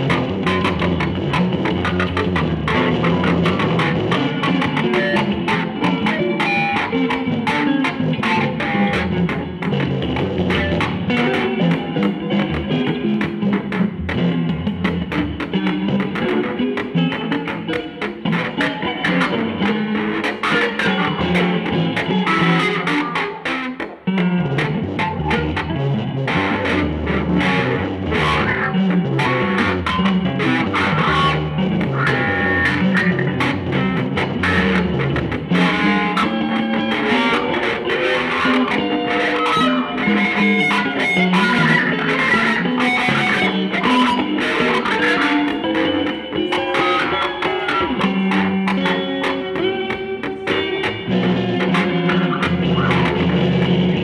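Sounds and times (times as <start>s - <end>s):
electric guitars playing samba: 0.0s - 54.0s.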